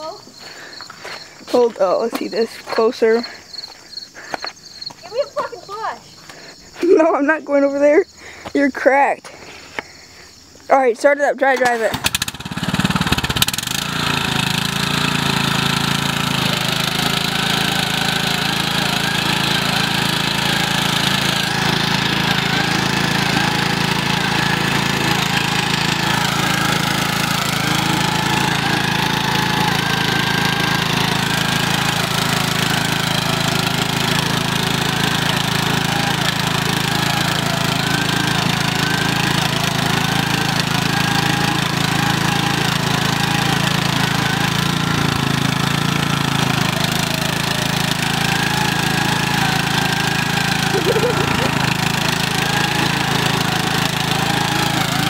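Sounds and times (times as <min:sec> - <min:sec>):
lawn mower engine running: 0:00.0 - 0:08.5, 0:11.4 - 0:55.0.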